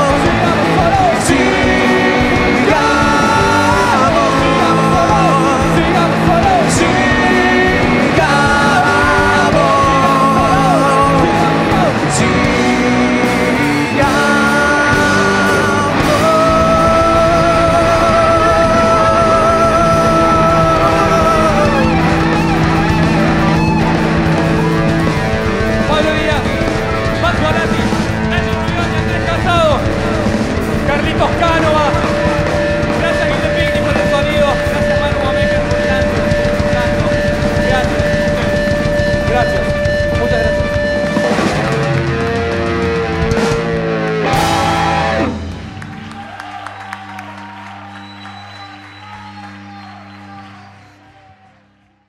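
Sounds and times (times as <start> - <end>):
lead guitar bending notes: 0.0 - 46.0
rock band playing instrumental: 0.0 - 50.4.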